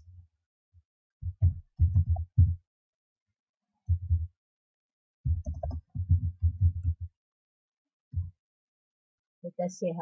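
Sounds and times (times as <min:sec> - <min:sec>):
computer keyboard typing: 0:05.4 - 0:06.2.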